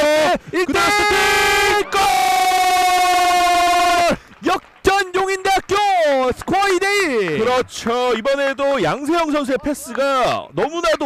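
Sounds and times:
commentator shouting goal: 0:00.0 - 0:11.0.

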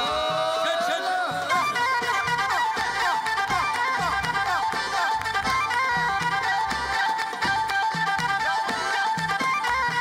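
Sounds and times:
band melody line: 0:00.0 - 0:10.0.

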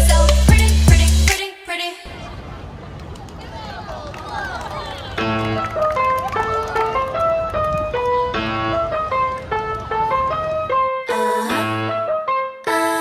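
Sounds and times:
bright keyboard melody: 0:05.2 - 0:13.0.

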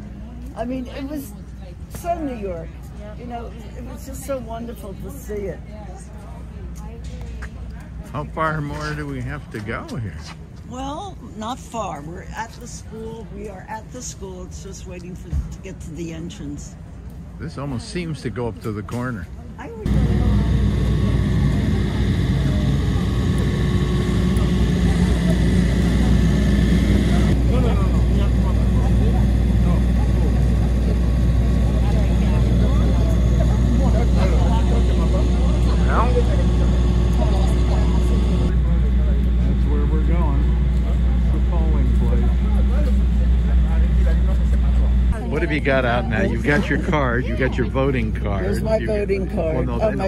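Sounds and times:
faint voices: 0:18.8 - 0:50.0
generator engine drone: 0:19.6 - 0:50.0.

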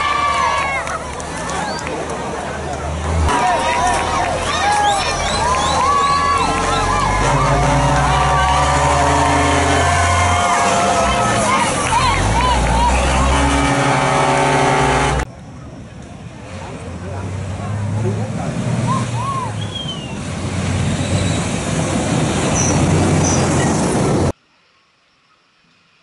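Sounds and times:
truck engine running: 0:00.8 - 0:18.9.

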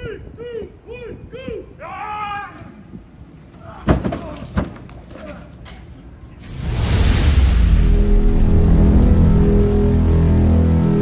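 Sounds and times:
noisy whoosh: 0:06.4 - 0:11.0
deep low drone: 0:06.5 - 0:11.0.

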